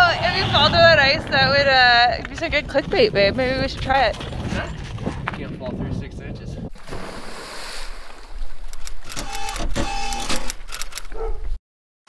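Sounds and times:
wind rumbling on microphone: 0.0 - 9.1
water splashing and churning: 6.7 - 9.0.

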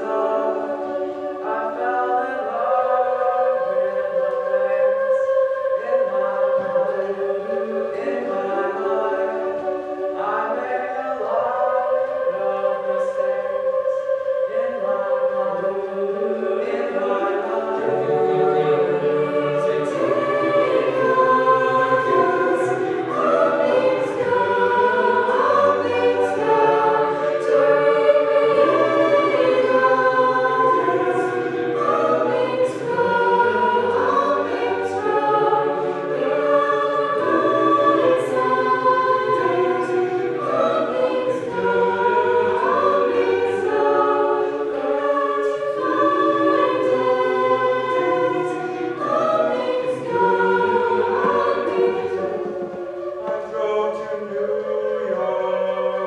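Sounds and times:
a cappella group singing: 0.0 - 56.0.

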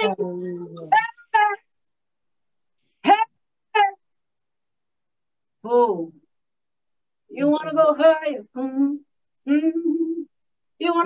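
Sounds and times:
woman singing: 7.3 - 10.3.

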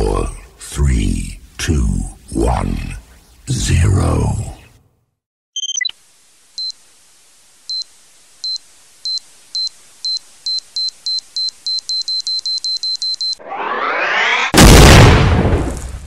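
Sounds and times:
short high-pitched beeps: 5.6 - 5.9, 7.7 - 13.4
rising whoosh: 13.4 - 14.6.

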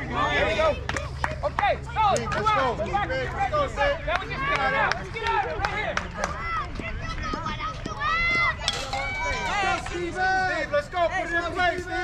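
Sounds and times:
people shouting and calling out: 0.0 - 12.0.

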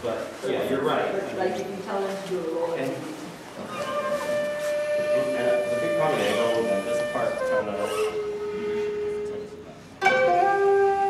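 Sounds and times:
long held flute note: 3.8 - 11.0.

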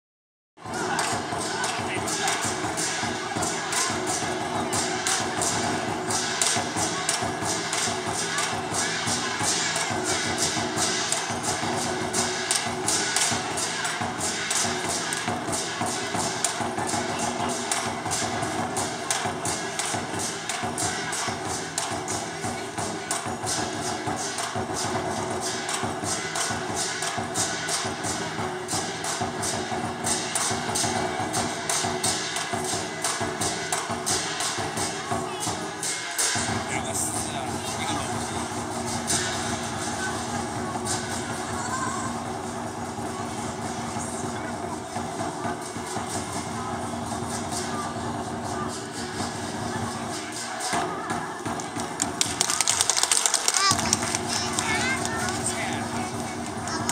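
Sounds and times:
large drum beaten fast: 0.6 - 56.9.

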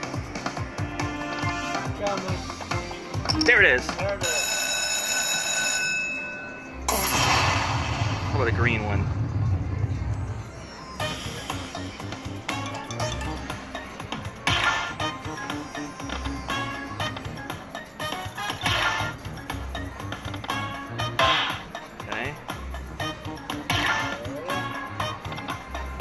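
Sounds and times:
slot machine music loop: 0.0 - 7.3, 10.9 - 26.0.

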